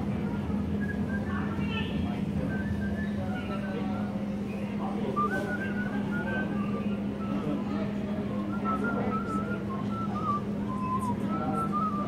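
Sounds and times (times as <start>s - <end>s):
steady low hum: 0.0s - 12.0s
man whistling a melody: 0.7s - 1.6s, 2.4s - 4.0s, 5.0s - 12.0s.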